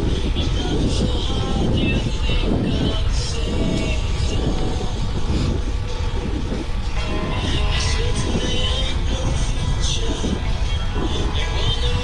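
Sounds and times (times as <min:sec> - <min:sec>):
wind rushing over microphone: 0:00.0 - 0:12.0.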